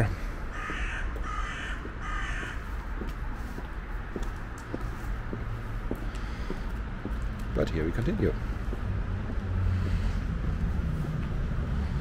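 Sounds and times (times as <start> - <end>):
crow cawing: 0.5 - 2.8.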